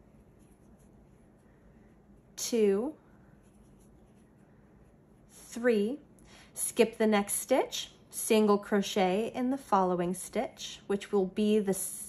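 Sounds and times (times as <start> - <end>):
faint rustle of yarn crocheting: 0.0 - 5.9.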